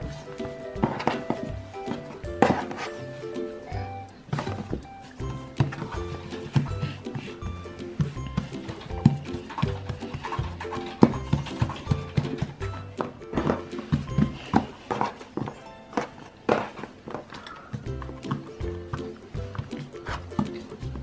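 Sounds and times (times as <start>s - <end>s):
background music with held notes: 0.0s - 21.0s.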